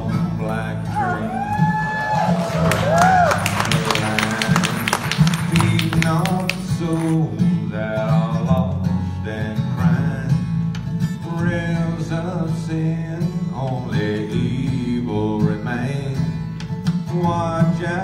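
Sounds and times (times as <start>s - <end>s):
strummed acoustic guitars: 0.0s - 18.0s
upright bass: 0.0s - 18.0s.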